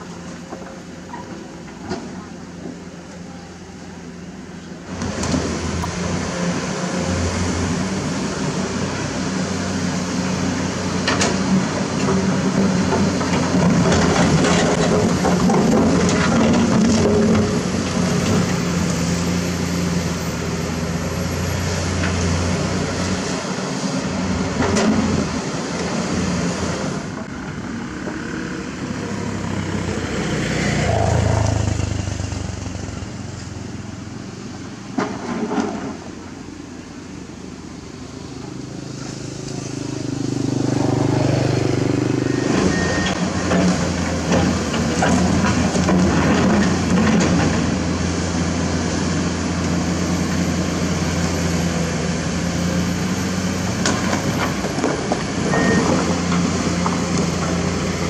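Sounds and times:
excavator diesel engines: 0.0 - 58.0.

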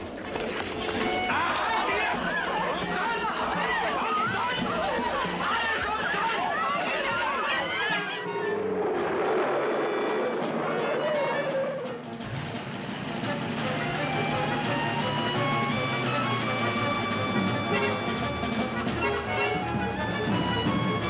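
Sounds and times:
crowd shouting and screaming: 0.8 - 12.0
dramatic orchestral music: 1.0 - 21.0.

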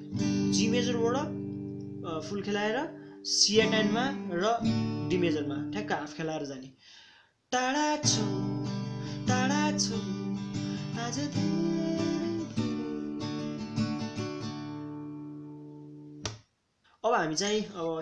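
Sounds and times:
acoustic guitar strumming: 0.0 - 6.2, 7.9 - 16.3.

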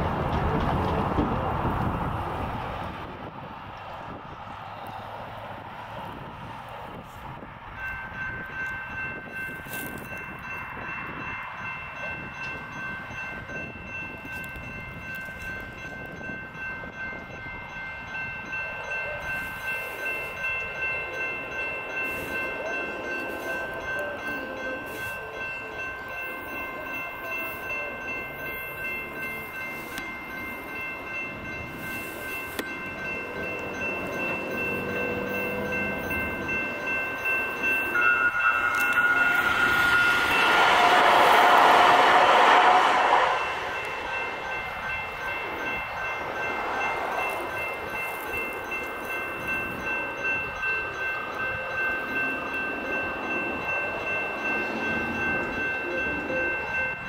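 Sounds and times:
railroad crossing bell ringing: 2.8 - 57.0
loud rushing noise: 38.0 - 45.2.

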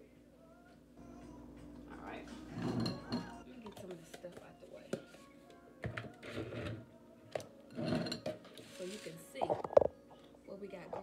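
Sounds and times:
spoon scraping bowl: 2.3 - 3.9, 5.9 - 6.8, 7.7 - 9.9
spoon clinking on jar: 2.6 - 3.4.

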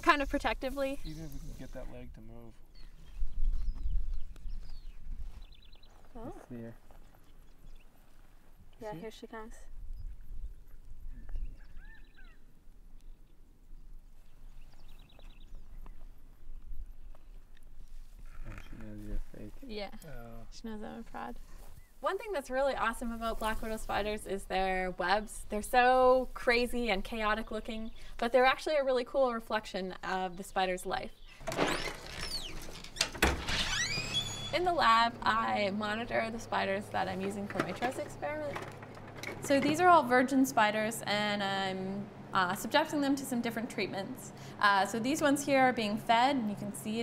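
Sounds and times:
rustling background noise: 0.0 - 2.0, 2.6 - 11.4, 20.6 - 33.5, 34.5 - 40.4
birds chirping: 0.0 - 8.1, 9.0 - 20.4, 29.7 - 33.0
wind rumble on microphone: 3.0 - 5.8
bird trilling: 11.1 - 12.5, 33.6 - 34.8.

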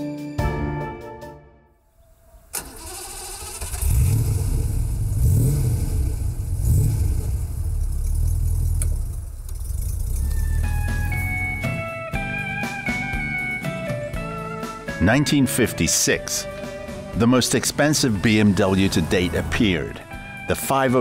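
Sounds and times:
car engine starting and revving: 2.4 - 11.9, 17.8 - 20.4
guitar music: 10.2 - 21.0.

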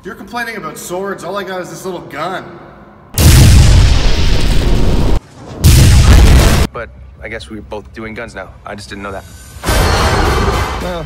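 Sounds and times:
energy blast sound effect: 3.2 - 6.7.

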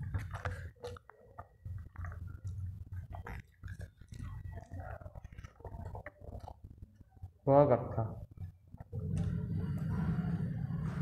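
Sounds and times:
person chewing food: 0.0 - 7.1.

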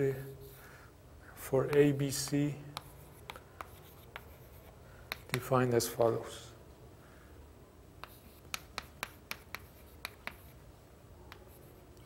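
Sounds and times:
chalk tapping on chalkboard: 1.6 - 5.5, 8.0 - 10.6.

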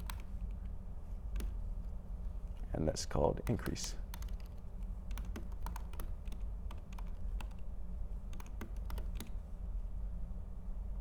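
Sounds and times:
typing on computer keyboard: 0.0 - 0.3, 3.4 - 7.6, 8.3 - 9.4
steady low hum: 0.0 - 11.0.

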